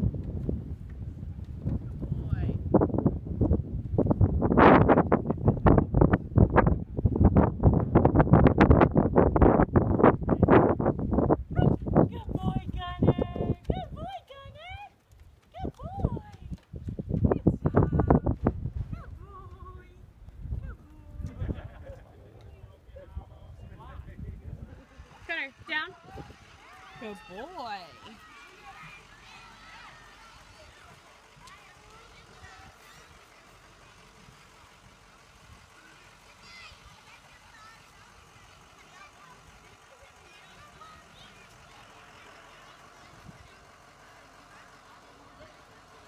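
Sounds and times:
bus engine idling: 0:19.1 - 0:46.0
distant children's voices: 0:24.9 - 0:46.0.

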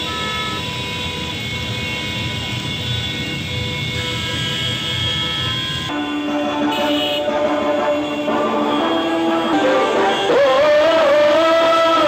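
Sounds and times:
traffic noise: 0:00.0 - 0:12.0
vehicle horns sounding: 0:00.0 - 0:12.0.

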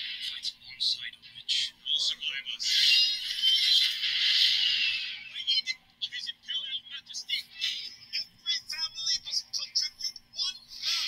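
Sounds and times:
dialogue from laptop speaker: 0:00.0 - 0:11.0.

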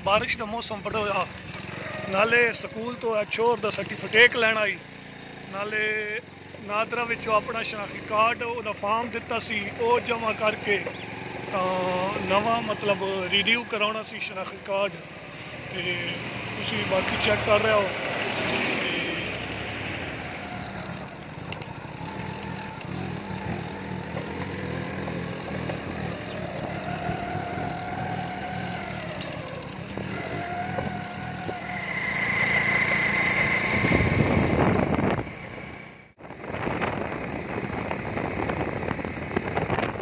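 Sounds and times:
small motorcycle engine running: 0:00.2 - 0:40.0
wind noise on microphone: 0:33.5 - 0:35.5, 0:36.2 - 0:40.0.

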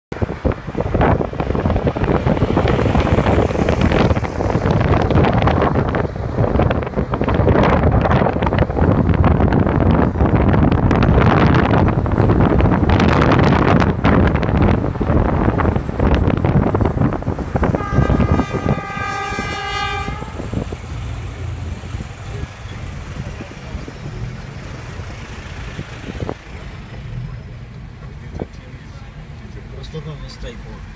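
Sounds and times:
car wind and road noise: 0:00.1 - 0:30.9
vehicle horn: 0:17.2 - 0:20.7.

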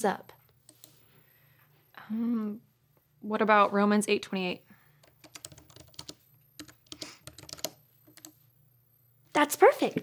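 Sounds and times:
computer keyboard typing: 0:00.6 - 0:01.0, 0:05.0 - 0:08.4.

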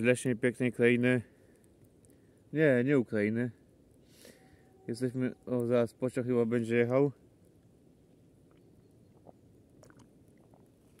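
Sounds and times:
swallowing: 0:08.5 - 0:11.0.

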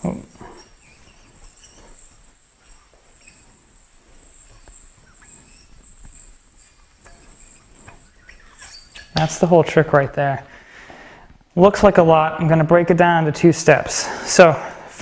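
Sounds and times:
yo-yo spinning on string: 0:00.0 - 0:10.1.

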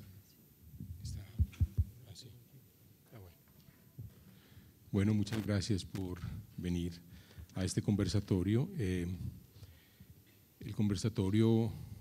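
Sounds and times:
microphone handling thumps: 0:00.8 - 0:02.0.

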